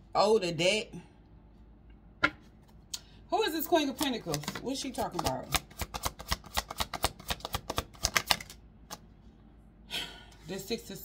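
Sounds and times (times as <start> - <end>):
cards being shuffled: 3.9 - 9.1.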